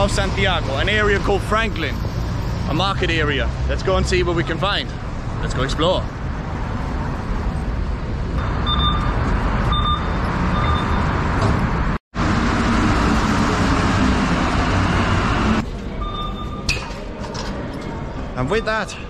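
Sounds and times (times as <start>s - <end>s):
street traffic: 0.0s - 19.0s
metro train rumble: 6.5s - 16.5s
short electronic beeps: 8.4s - 11.1s, 16.0s - 16.8s
low motor hum: 8.4s - 16.6s.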